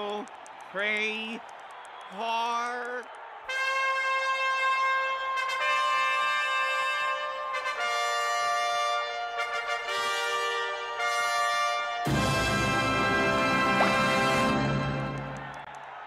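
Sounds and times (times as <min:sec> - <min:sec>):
brass band fanfare: 0:03.4 - 0:15.7.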